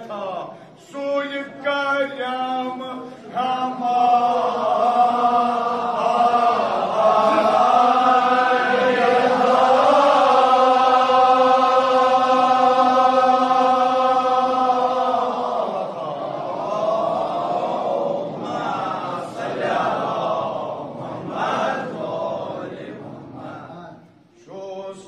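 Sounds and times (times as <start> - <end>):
men chanting: 0.0 - 25.0.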